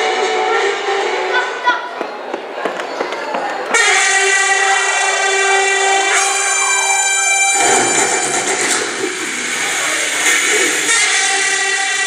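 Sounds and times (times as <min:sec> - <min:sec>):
train horn blast: 0:03.7 - 0:08.9.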